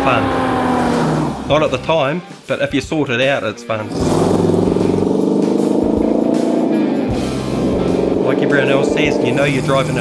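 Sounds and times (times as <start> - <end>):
car engine pulling away: 0.0 - 1.6, 3.9 - 10.0.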